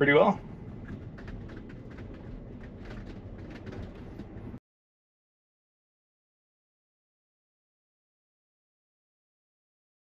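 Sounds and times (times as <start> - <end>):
road and tyre noise in car: 0.0 - 4.6.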